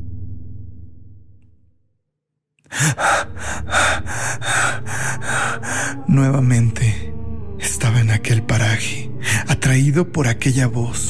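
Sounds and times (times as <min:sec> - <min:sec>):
rapid heavy panting: 0:02.7 - 0:06.1
low ambient drone: 0:02.8 - 0:11.0.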